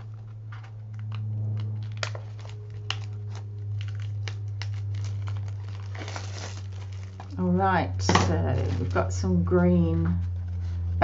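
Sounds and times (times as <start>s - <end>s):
plastic wrapping crinkling: 0.0s - 9.3s
low hum: 0.0s - 11.0s.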